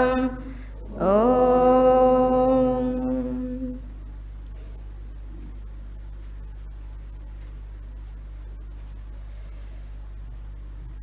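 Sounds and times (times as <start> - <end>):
woman chanting long notes: 0.0 - 3.9.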